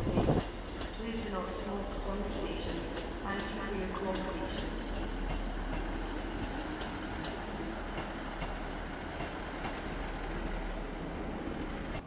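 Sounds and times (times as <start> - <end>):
train wheels rolling: 0.0 - 12.0
wheels clicking over rail joints: 0.0 - 12.0.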